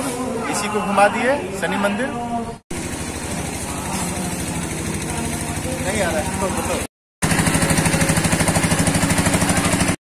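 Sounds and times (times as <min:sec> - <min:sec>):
small engine idling: 0:02.7 - 0:10.0.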